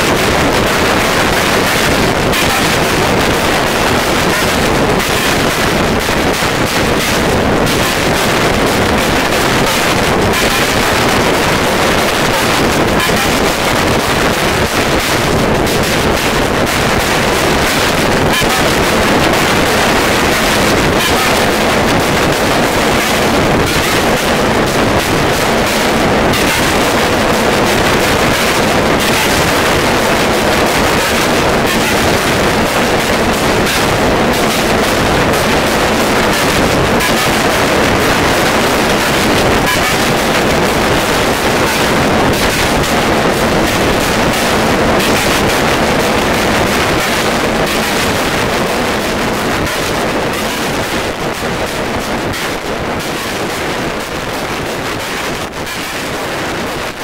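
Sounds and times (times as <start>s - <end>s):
harsh distorted static noise: 0.0s - 57.0s.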